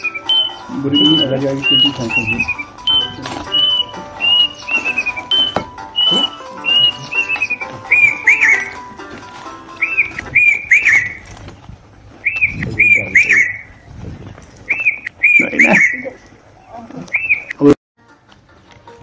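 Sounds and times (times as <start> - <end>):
cuckoo calling: 0.0 - 13.9, 14.6 - 17.8.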